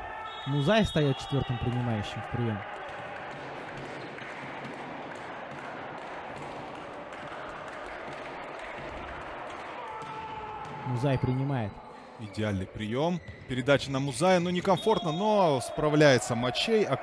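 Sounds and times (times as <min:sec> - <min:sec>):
indoor hall background noise: 0:00.0 - 0:17.0.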